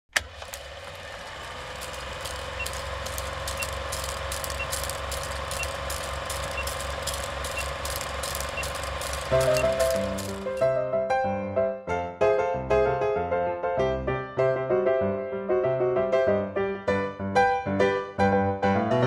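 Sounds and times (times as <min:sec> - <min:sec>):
film projector whirring and clicking: 0:00.1 - 0:10.7
piano music: 0:09.3 - 0:19.0.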